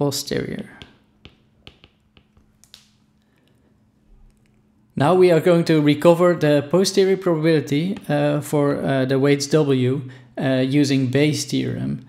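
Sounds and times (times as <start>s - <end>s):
stylus tapping on tablet screen: 0.8s - 3.0s.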